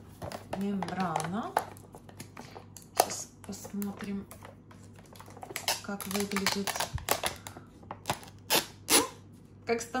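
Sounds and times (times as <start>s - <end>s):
foil seal crinkling: 4.9s - 9.1s.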